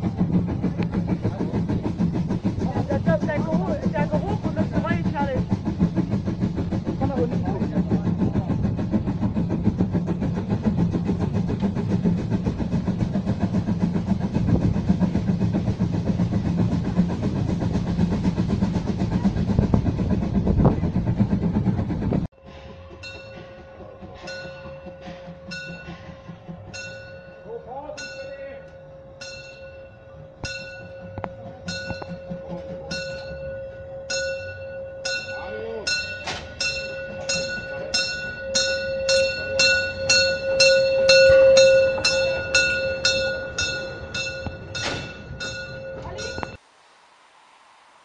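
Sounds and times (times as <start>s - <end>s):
wheels rattling: 0.0s - 46.7s
steam train rumble: 0.0s - 48.0s
bell striking: 26.8s - 46.6s.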